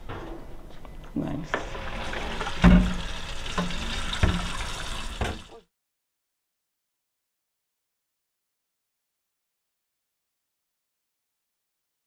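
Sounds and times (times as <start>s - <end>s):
tap running into metal sink: 1.5s - 5.6s
dish knocking against sink: 2.3s - 5.5s.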